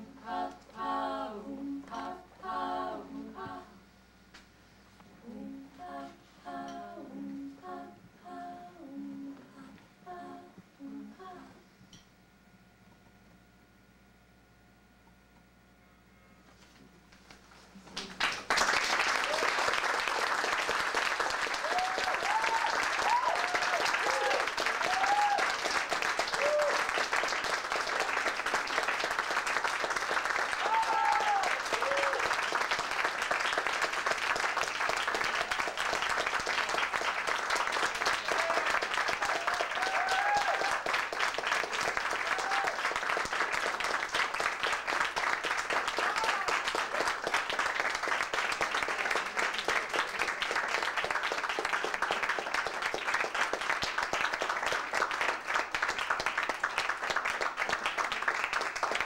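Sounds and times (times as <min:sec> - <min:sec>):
audience applauding: 0:18.0 - 0:59.0
whooping cheers: 0:19.2 - 0:19.6, 0:21.5 - 0:27.0, 0:30.4 - 0:32.4, 0:38.1 - 0:40.9, 0:42.1 - 0:43.0, 0:46.0 - 0:46.7.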